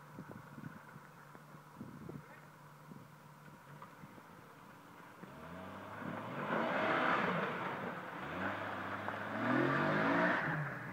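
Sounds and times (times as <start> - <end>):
engine revving under load: 5.2 - 10.9.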